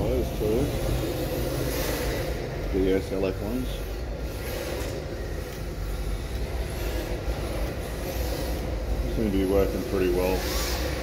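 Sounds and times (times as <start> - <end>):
constant hum: 0.0 - 11.0.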